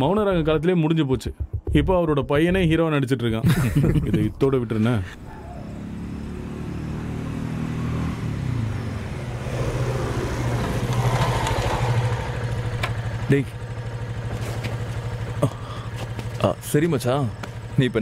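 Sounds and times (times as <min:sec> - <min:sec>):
motorcycle engine running: 0:05.6 - 0:18.0.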